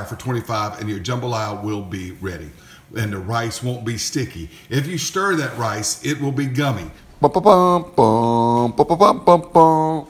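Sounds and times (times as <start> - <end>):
man singing long held notes: 7.2 - 10.0.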